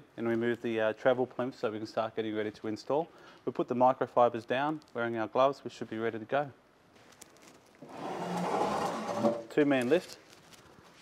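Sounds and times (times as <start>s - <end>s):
soft rustling scrape: 7.0s - 11.0s.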